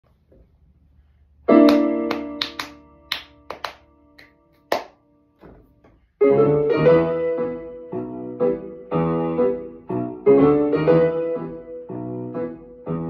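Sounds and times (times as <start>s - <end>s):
piano duet: 1.4s - 13.0s.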